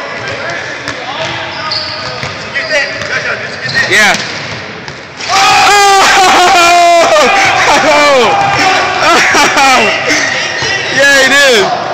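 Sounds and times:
basketballs bouncing on wooden floor: 0.1s - 2.4s.

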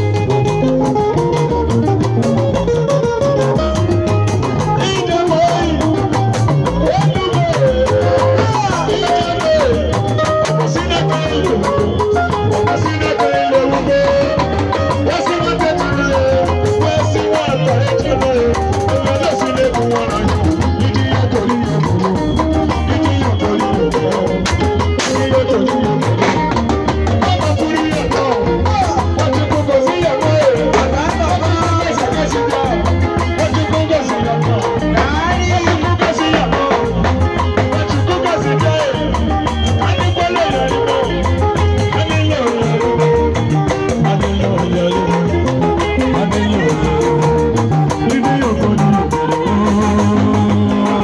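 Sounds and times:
bass line: 0.0s - 51.0s
drum kit: 0.0s - 51.0s
guitar: 0.0s - 51.0s
man singing into microphone: 0.0s - 51.0s.

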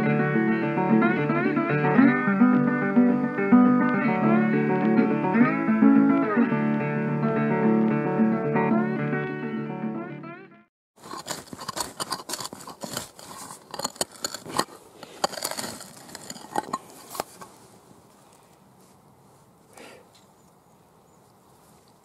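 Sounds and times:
digging tool scraping stony soil: 11.0s - 17.8s
faint rustling of soil: 11.0s - 22.0s.

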